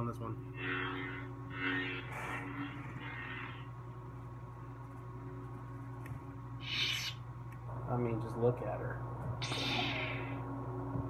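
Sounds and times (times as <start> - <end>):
lightsaber hum: 0.4 - 4.3, 6.4 - 7.4, 9.4 - 11.0.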